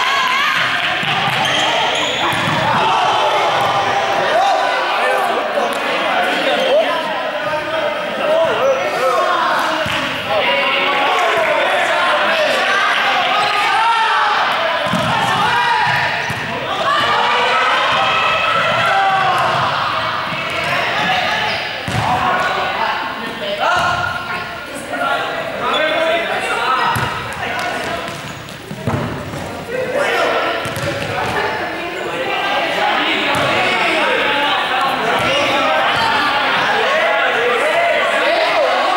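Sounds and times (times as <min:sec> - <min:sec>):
people talking in echoing hall: 0:00.0 - 0:38.9
shoe soles squeaking: 0:01.4 - 0:02.4
ball bouncing on court floor: 0:02.2 - 0:02.8, 0:14.8 - 0:16.5, 0:21.8 - 0:22.1, 0:26.9 - 0:29.6, 0:30.6 - 0:31.4, 0:33.3 - 0:33.6.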